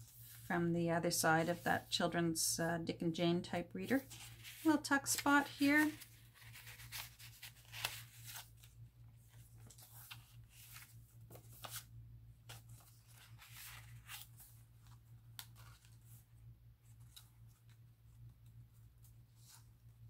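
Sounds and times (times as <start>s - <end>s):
paper and card rustling: 3.8s - 19.8s
pages turning: 3.9s - 16.3s.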